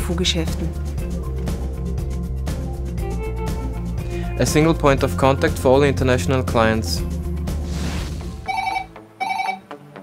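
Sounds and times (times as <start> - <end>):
telephone ringing electronically: 8.5 - 9.7.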